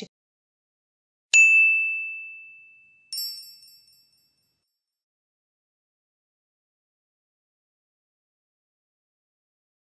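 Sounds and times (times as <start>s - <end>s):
bright bell-like ding: 1.4s - 4.6s
sparkling chime: 1.4s - 4.8s.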